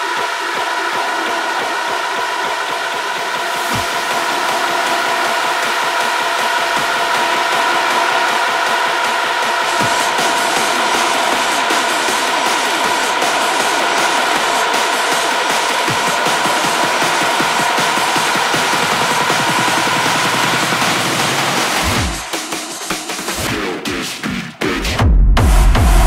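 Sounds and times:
hard techno music: 0.0s - 26.0s.

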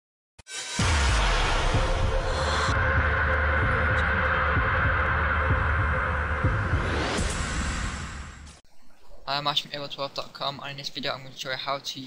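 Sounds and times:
higher droning tone: 0.6s - 8.6s
deep bass hum: 0.8s - 8.5s.

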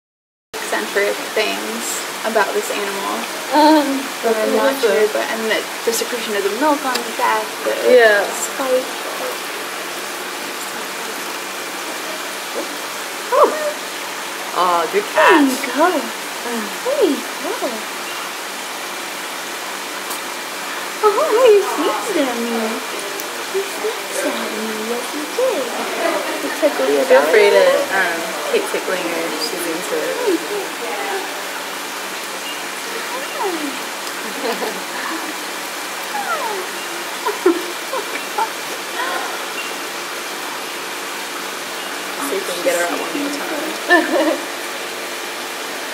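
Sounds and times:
faint voices: 0.6s - 18.4s, 19.9s - 40.4s, 41.2s - 45.9s
running water rushing: 0.6s - 45.9s.

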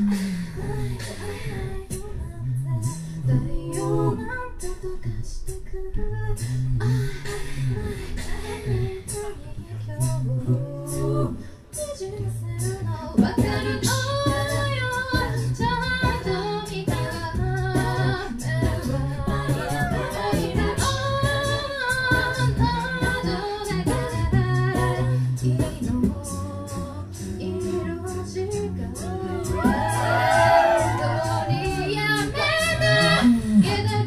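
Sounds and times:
beatboxed percussion: 0.0s - 34.0s
female lead and harmony voices: 0.0s - 34.0s
sung bass line: 0.0s - 34.0s.

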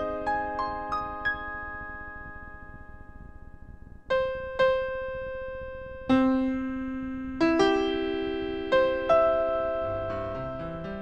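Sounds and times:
piano notes ringing: 0.0s - 11.0s.

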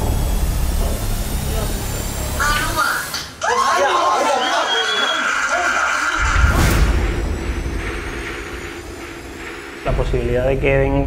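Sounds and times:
deep boom: 6.2s - 11.0s.

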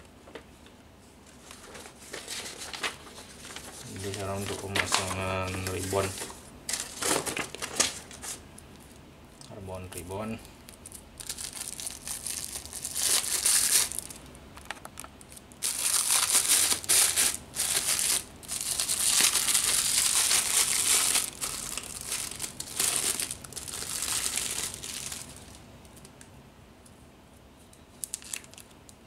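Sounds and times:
plastic wrapping crinkling: 1.3s - 9.0s, 10.7s - 26.1s, 28.0s - 28.8s.

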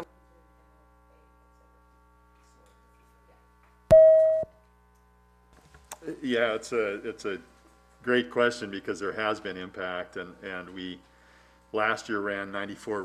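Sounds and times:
electronic beep: 3.9s - 4.5s.

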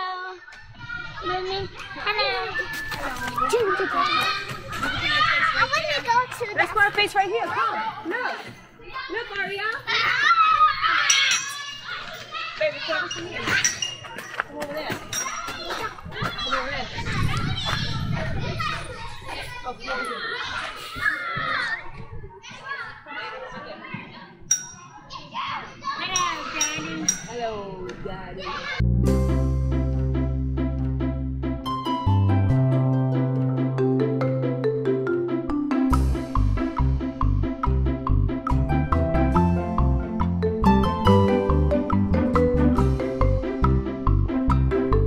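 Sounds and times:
children shouting and chattering: 0.0s - 29.0s.

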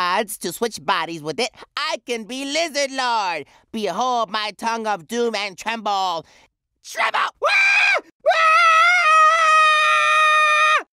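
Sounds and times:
cartoon character screaming: 6.9s - 10.9s.

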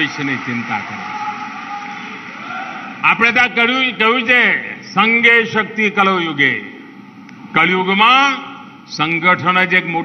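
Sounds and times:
echoing crowd noise: 0.0s - 9.9s.

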